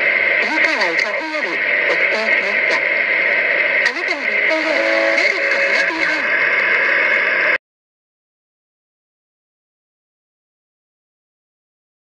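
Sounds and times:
radio static and hiss: 0:00.0 - 0:07.6
radio announcer speaking: 0:00.3 - 0:03.1, 0:03.7 - 0:07.2.

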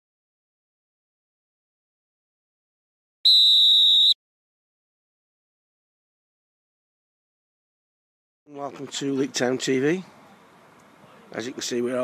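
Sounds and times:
high-pitched whistle blast: 0:03.2 - 0:04.2.

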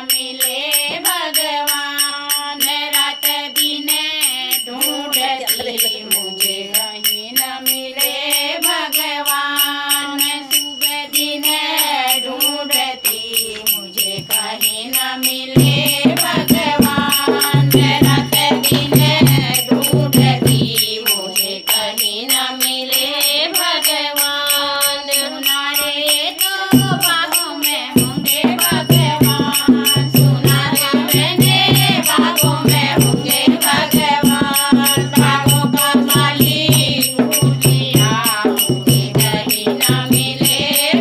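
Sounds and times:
jingling hand percussion: 0:00.0 - 0:41.0
woman singing devotional song: 0:00.0 - 0:41.0.

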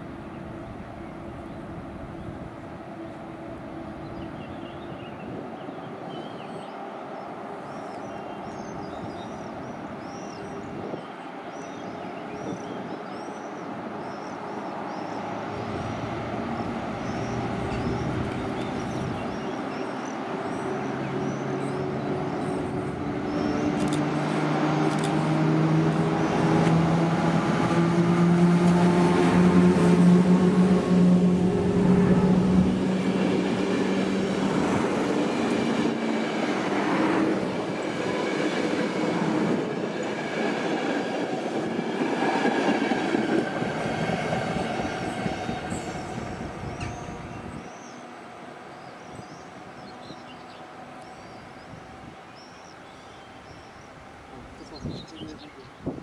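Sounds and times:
electric locomotive motor hum: 0:13.9 - 0:54.6
train wheel noise: 0:14.8 - 0:48.4
rail clicks: 0:15.4 - 0:27.8, 0:31.9 - 0:48.0.

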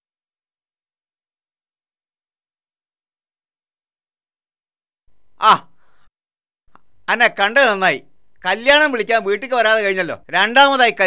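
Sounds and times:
faint background hiss: 0:05.1 - 0:06.0, 0:06.7 - 0:11.0
man exclaiming: 0:05.4 - 0:05.7.

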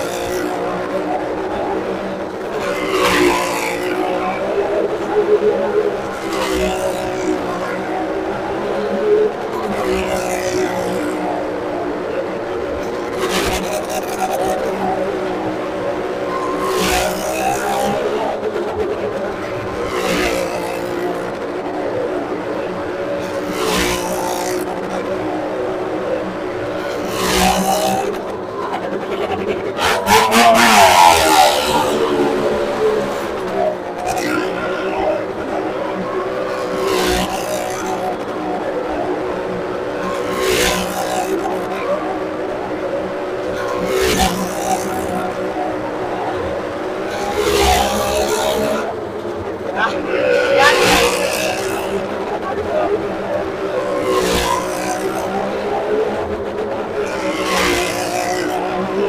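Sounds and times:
motorcycle engine running hard: 0:00.0 - 0:59.0.

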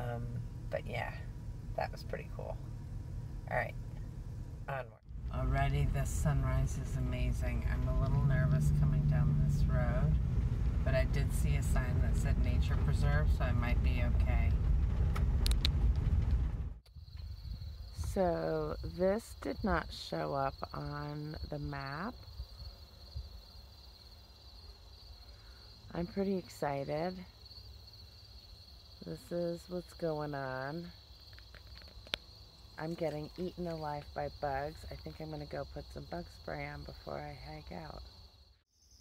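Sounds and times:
van driving on unpaved road: 0:00.0 - 0:16.8, 0:29.0 - 0:38.1
insects chorus: 0:16.9 - 0:39.0.

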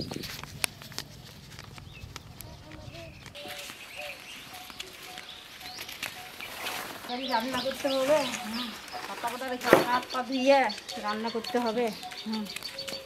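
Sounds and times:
footsteps on grass: 0:00.0 - 0:13.0
distant voices: 0:00.4 - 0:13.0.

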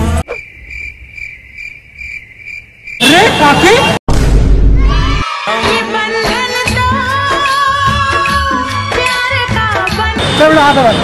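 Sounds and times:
crickets chirping: 0:00.2 - 0:03.2
loud music with voice: 0:05.2 - 0:09.4.

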